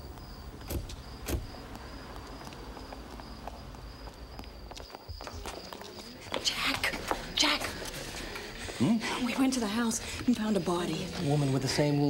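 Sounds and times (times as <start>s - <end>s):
quick footsteps: 0.6s - 8.8s.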